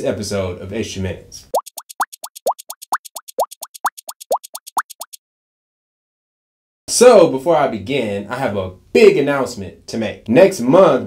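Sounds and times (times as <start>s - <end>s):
rapid bubble pops: 1.6s - 5.2s.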